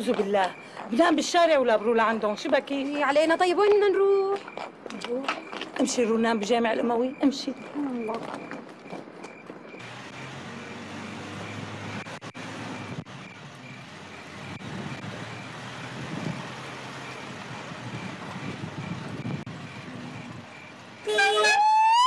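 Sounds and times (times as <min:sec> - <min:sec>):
van engine humming: 0:09.0 - 0:22.0.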